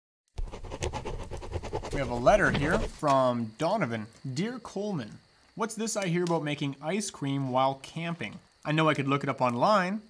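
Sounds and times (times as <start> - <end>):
pen scratching on paper: 0.4 - 3.0.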